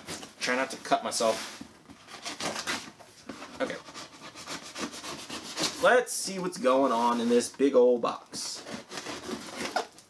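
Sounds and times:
scraping and rubbing of cardboard box: 0:01.1 - 0:06.0, 0:08.4 - 0:09.9.

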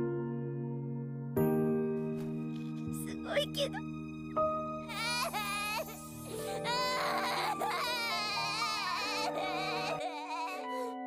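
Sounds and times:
soft background music: 0:00.0 - 0:11.0
girl crying in sobs: 0:04.8 - 0:11.0.

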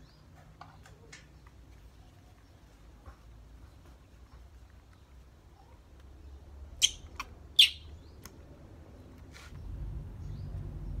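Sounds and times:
baby monkey squeaking: 0:06.8 - 0:07.9.

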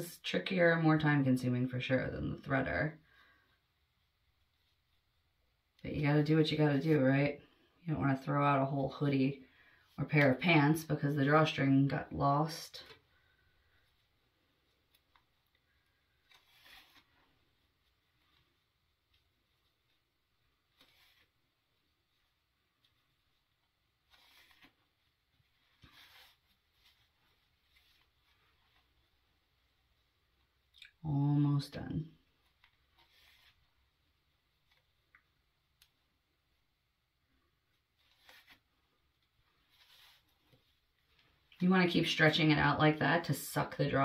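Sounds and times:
fabric rustling: 0:12.8 - 0:30.6, 0:37.3 - 0:41.7.

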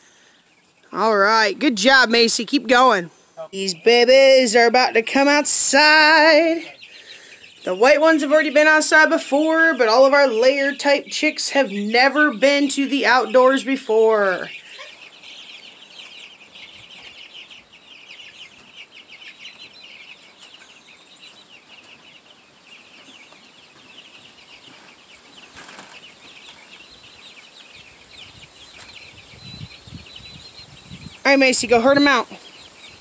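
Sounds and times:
chicks peeping: 0:00.0 - 0:33.0.

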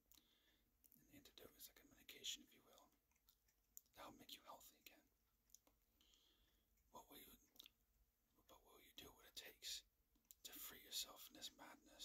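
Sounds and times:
man whispering: 0:00.9 - 0:03.0, 0:03.8 - 0:05.2, 0:06.9 - 0:07.8, 0:08.4 - 0:12.0.

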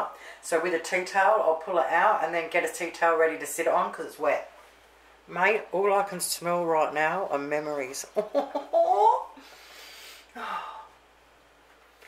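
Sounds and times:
breathy sniff: 0:09.4 - 0:10.5.

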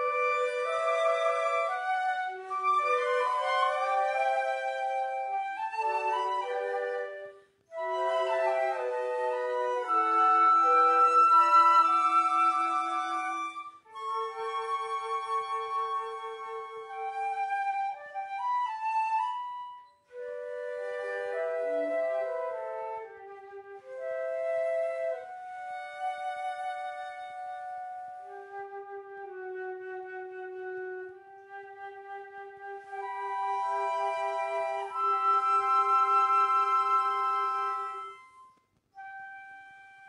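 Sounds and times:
flutes and clarinet playing: 0:00.0 - 0:40.0.

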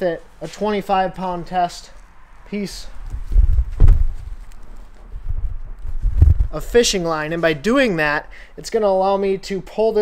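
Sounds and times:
low rumble of handling: 0:01.9 - 0:06.8
heavy low thumps and knocks: 0:03.0 - 0:04.4, 0:05.2 - 0:06.5.

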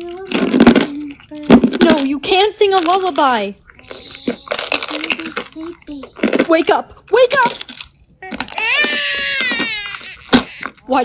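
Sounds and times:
baby crying: 0:08.2 - 0:11.0.

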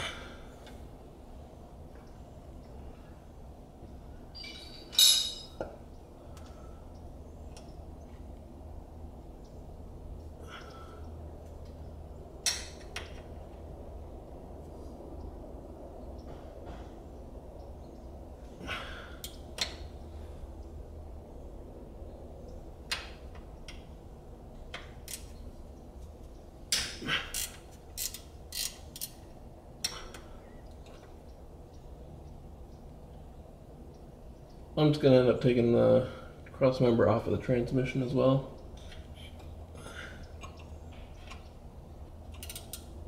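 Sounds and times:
low steady hum: 0:00.0 - 0:43.0
hand tools clicking and clinking: 0:04.3 - 0:05.6, 0:26.7 - 0:29.2.

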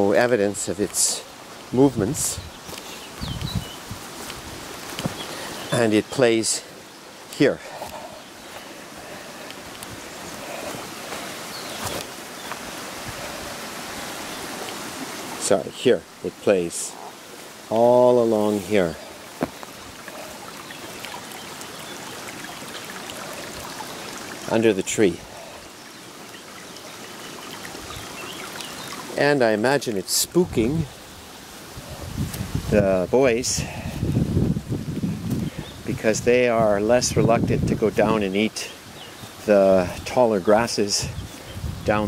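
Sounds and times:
water rushing in canal: 0:00.0 - 0:34.2.

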